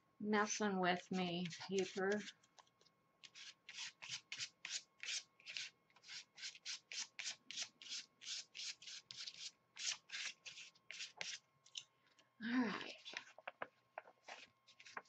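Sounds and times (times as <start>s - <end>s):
applicator scrubbing paint on paper: 1.2s - 2.4s, 3.2s - 11.4s.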